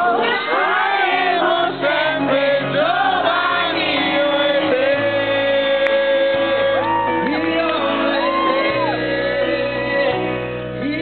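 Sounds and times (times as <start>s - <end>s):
person singing: 0.0s - 11.0s
pop-rock band playing: 0.0s - 11.0s.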